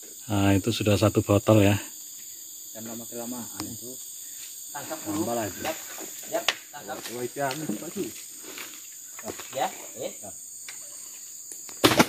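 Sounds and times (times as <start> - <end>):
high insect buzz: 0.0 - 12.0.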